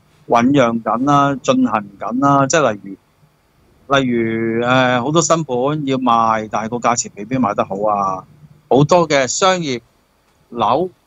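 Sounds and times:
man speaking drawn-out syllable: 0.3 - 3.0, 3.9 - 9.8, 10.6 - 10.9.

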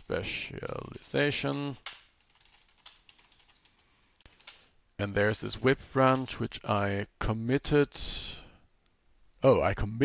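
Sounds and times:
computer keyboard typing: 0.8 - 4.7.

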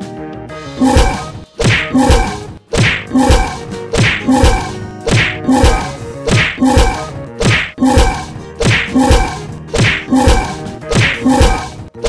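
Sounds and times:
cartoon whacks and thuds: 0.8 - 12.0.

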